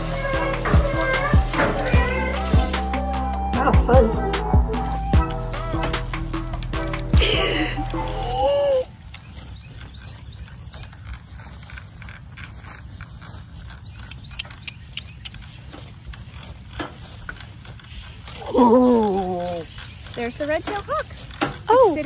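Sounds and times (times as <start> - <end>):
cart and harness clicks: 0.0 - 3.0, 4.8 - 22.0
cart rumbling over grass: 0.0 - 22.0.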